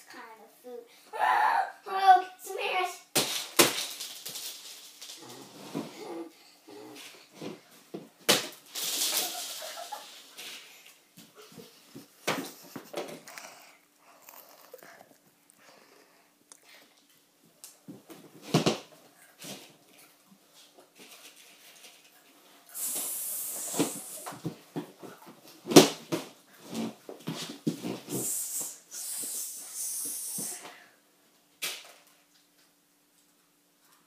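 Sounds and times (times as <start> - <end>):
child calling out: 1.1 - 2.9.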